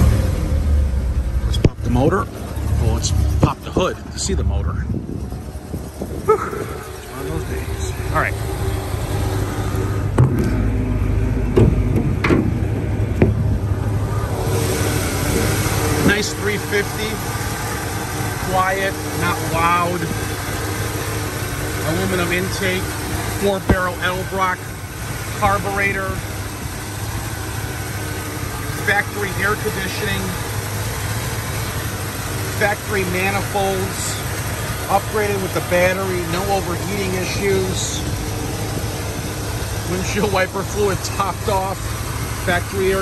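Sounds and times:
car engine idling: 0.0s - 43.0s
car hood knocks and clicks: 10.2s - 10.6s, 11.5s - 13.6s.

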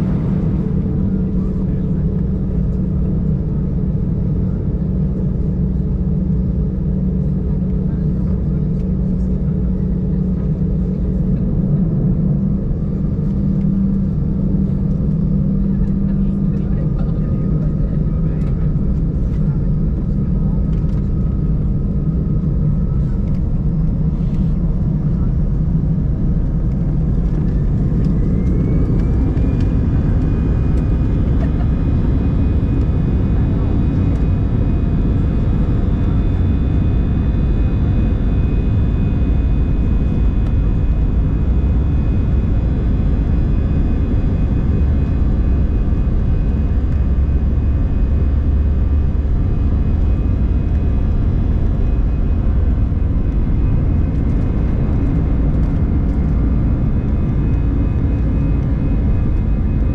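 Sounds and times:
jet engine drone: 0.0s - 59.9s
rising engine whine: 0.0s - 59.9s.

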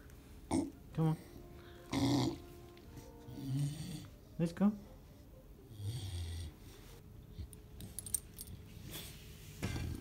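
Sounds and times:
metal leash clip clinking: 7.8s - 8.6s.

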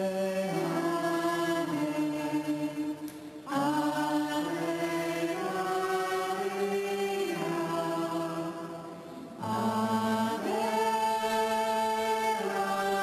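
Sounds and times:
slow sung chant: 0.0s - 13.0s.

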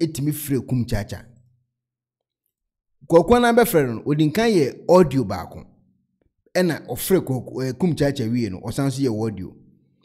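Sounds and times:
person speaking: 3.0s - 5.8s.

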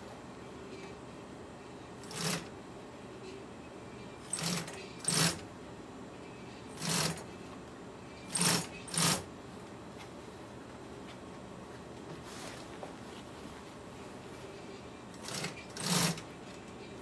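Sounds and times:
sewing machine stitching vinyl: 2.0s - 2.5s, 4.2s - 5.4s, 6.8s - 7.3s, 8.3s - 9.3s, 15.2s - 16.3s.

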